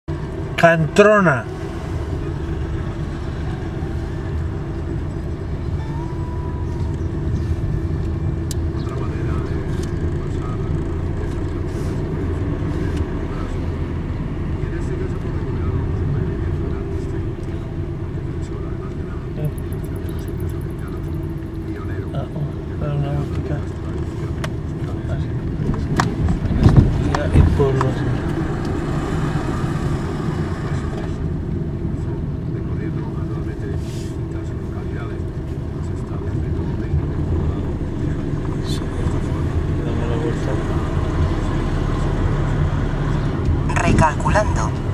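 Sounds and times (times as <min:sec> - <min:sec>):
car road and engine noise: 0:00.0 - 0:44.9.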